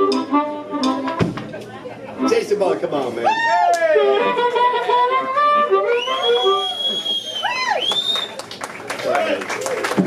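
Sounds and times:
blues band playing: 0.0s - 7.6s
cheering: 3.2s - 4.1s
whooping shout: 3.2s - 4.2s, 7.4s - 8.2s
person whistling high note: 5.6s - 8.4s.

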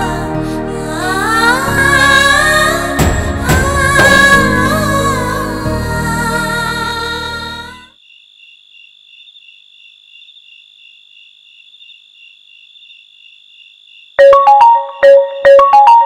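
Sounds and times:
crickets chirping: 7.9s - 14.2s
phone ringtone marimba notes: 14.2s - 16.0s.

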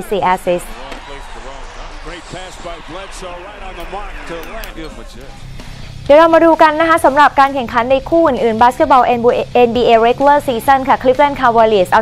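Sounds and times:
scattered voices: 0.0s - 6.2s
arena crowd noise: 0.0s - 7.0s.

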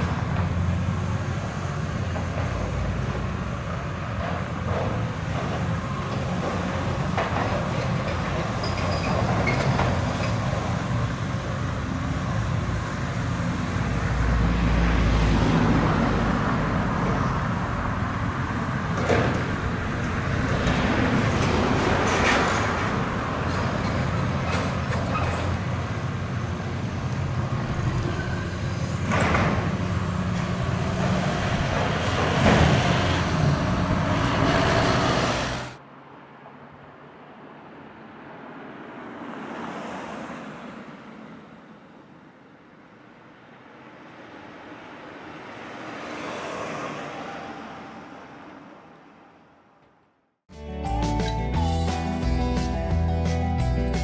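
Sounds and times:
vehicles passing: 0.0s - 54.0s
excavator engine running hard: 26.0s - 35.8s.

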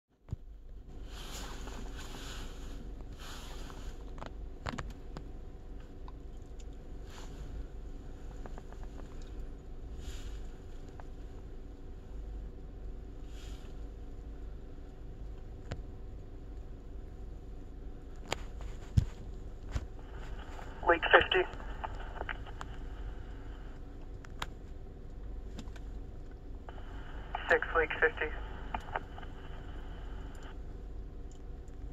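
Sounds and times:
low steady rumble: 0.3s - 31.9s
radio static hiss: 20.0s - 23.8s, 26.7s - 30.6s
faint clicks: 20.3s - 22.9s, 25.6s - 30.6s.

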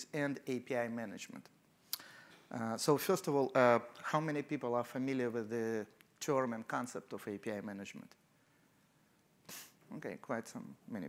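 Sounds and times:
man speaking: 0.0s - 1.6s, 2.5s - 8.2s, 9.5s - 11.0s
sharp intake of breath: 9.5s - 9.8s.

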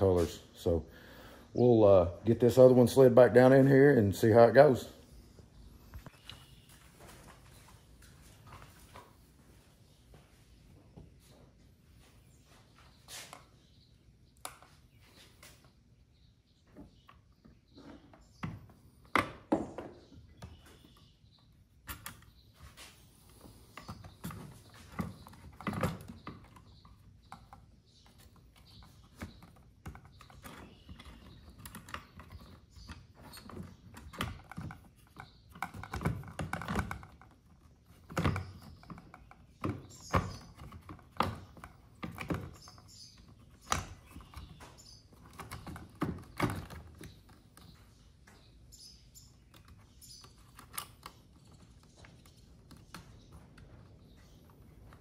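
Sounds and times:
plastic parts clicking and knocking: 23.7s - 47.8s.

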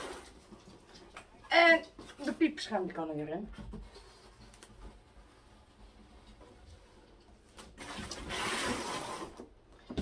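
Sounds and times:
cardboard box scraping on floor: 0.0s - 0.8s, 3.7s - 9.6s
faint room noise: 0.0s - 10.0s.

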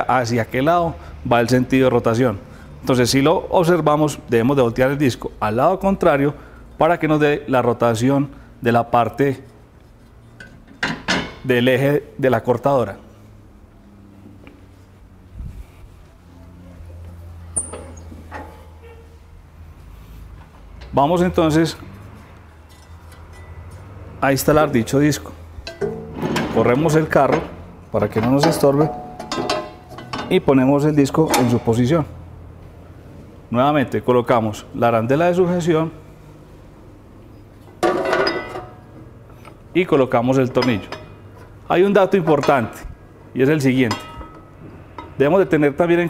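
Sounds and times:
metal washer clattering: 10.3s - 11.5s, 25.6s - 30.5s, 31.2s - 31.7s, 37.7s - 39.6s, 40.4s - 42.8s, 43.8s - 45.2s
sharp metallic knocks: 25.6s - 26.6s, 28.2s - 30.4s.

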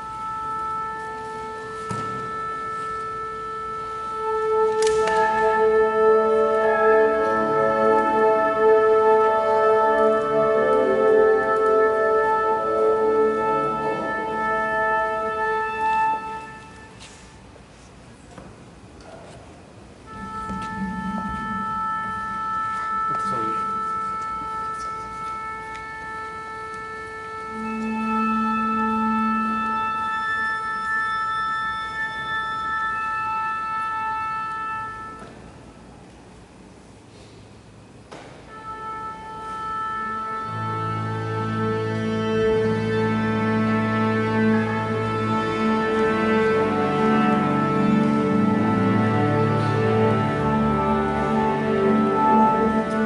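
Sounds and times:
wind instrument steady note: 0.0s - 17.2s, 20.0s - 36.0s, 38.5s - 53.0s
wind instrument holding one note: 20.1s - 35.2s.

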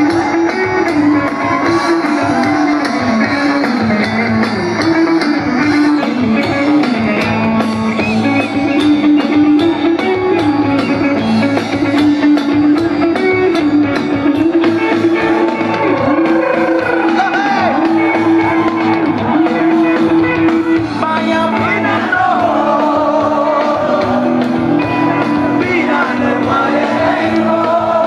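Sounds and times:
drum kit steady beat: 0.0s - 28.0s
electric guitar melody: 0.0s - 28.0s.

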